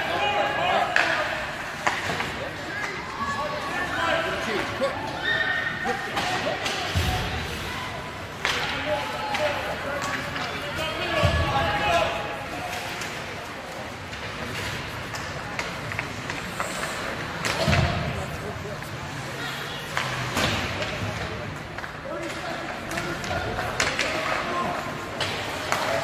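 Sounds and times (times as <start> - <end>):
spectators chattering: 0.0 - 26.0.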